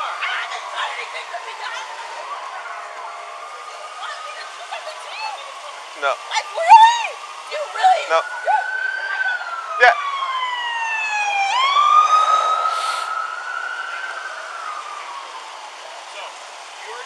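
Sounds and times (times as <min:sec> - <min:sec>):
police siren wailing: 0:00.0 - 0:17.0.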